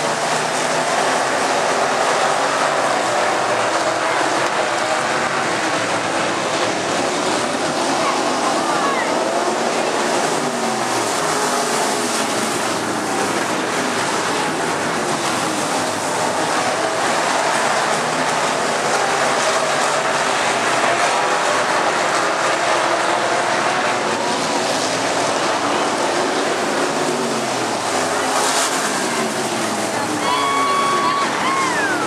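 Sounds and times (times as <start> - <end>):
race car engines revving: 0.0 - 32.0.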